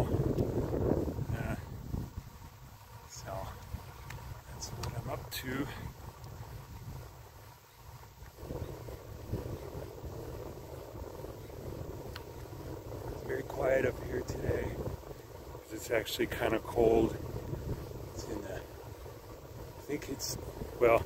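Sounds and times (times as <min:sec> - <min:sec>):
wind rumbling on microphone: 0:00.0 - 0:21.0.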